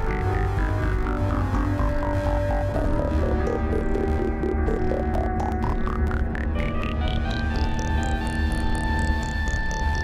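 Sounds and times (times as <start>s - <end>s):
deep bass throb: 0.0s - 10.0s
synthesizer short notes climbing: 0.0s - 10.0s.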